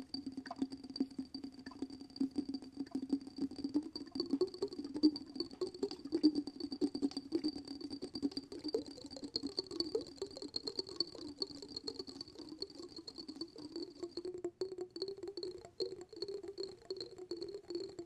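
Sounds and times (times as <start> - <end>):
fingernails tapping on glass jar: 0.4 - 18.0.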